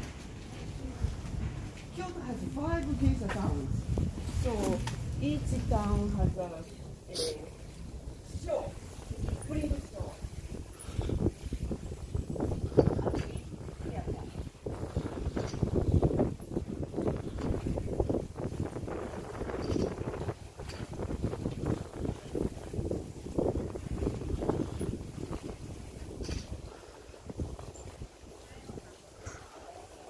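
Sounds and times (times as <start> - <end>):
bicycle rattling over paving stones: 2.4 - 28.5.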